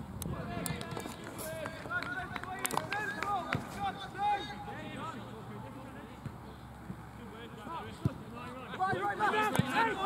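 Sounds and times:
voices shouting and calling: 0:07.7 - 0:10.0.

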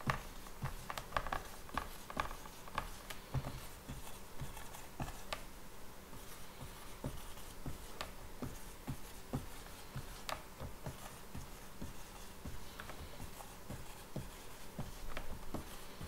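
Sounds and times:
marker writing on whiteboard: 0:00.0 - 0:16.0.

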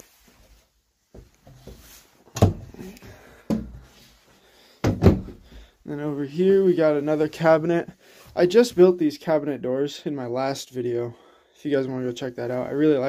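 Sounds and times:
wooden cabinet doors knocking shut: 0:04.8 - 0:05.4.

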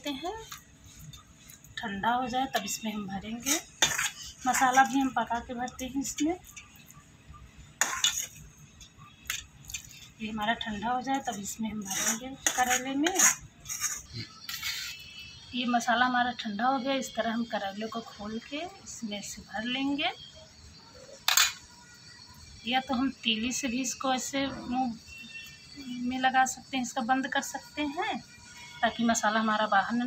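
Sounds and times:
steel spoon scraping a plate: 0:02.5 - 0:05.5, 0:07.8 - 0:08.5, 0:11.2 - 0:15.2.

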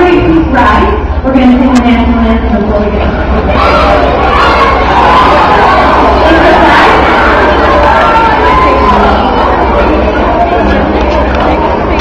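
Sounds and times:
children shouting and cheering: 0:03.2 - 0:12.0.

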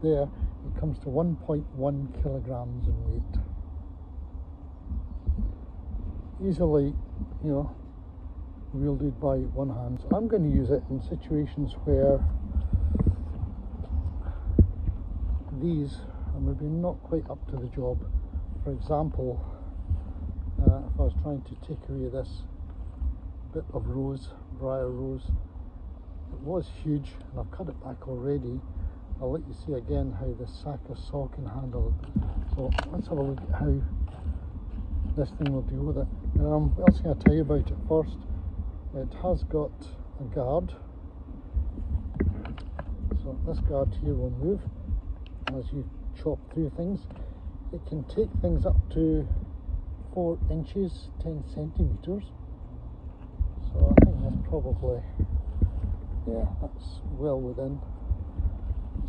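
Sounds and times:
wind buffeting microphone: 0:00.0 - 0:59.0
light clicks and ticks: 0:31.9 - 0:34.2, 0:44.6 - 0:45.7.

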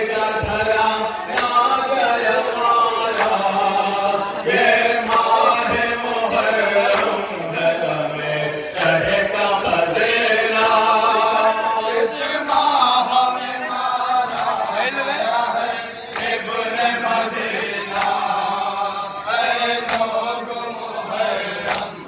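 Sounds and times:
men chanting in chorus: 0:00.0 - 0:22.0.

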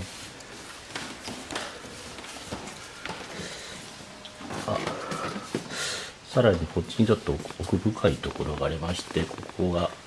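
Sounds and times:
breathy exhale: 0:04.8 - 0:06.2.

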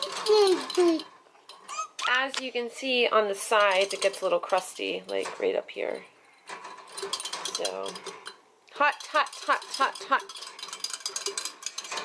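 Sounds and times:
toddler babbling: 0:00.2 - 0:01.1, 0:01.7 - 0:02.0
toddler squealing: 0:01.7 - 0:02.1.

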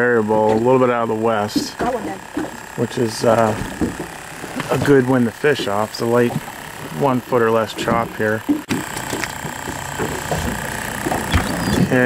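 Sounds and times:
aerator pump humming: 0:00.0 - 0:12.0.

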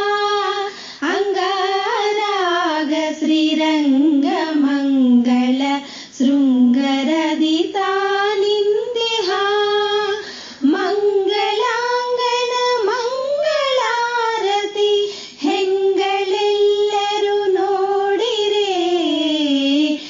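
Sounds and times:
woman singing devotional song: 0:00.0 - 0:20.0.

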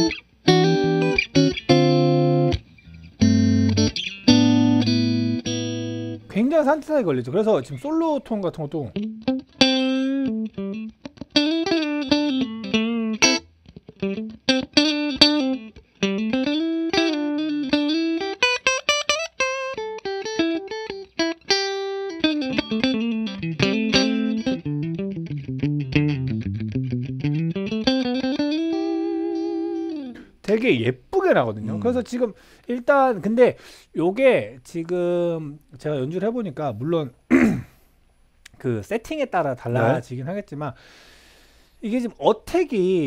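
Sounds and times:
clean electric guitar lead: 0:00.0 - 0:06.3, 0:08.9 - 0:30.3.

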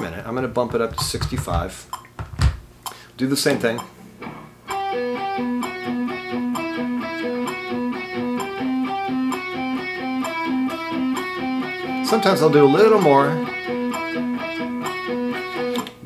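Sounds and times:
electric guitar picking: 0:04.2 - 0:16.0.

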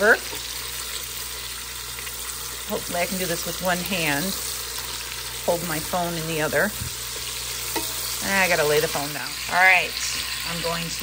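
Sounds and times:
meat sizzling in grease: 0:00.0 - 0:11.0.

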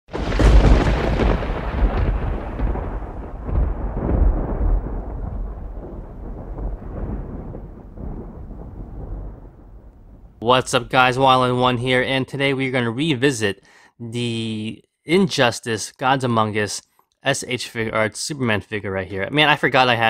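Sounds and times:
thunder-like boom and rumble: 0:00.1 - 0:10.4.

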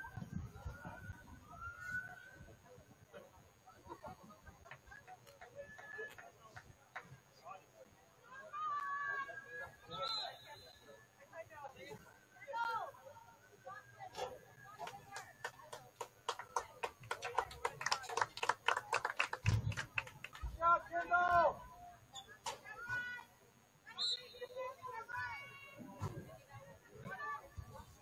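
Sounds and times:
voices calling and shouting: 0:00.0 - 0:18.2, 0:19.5 - 0:28.0.

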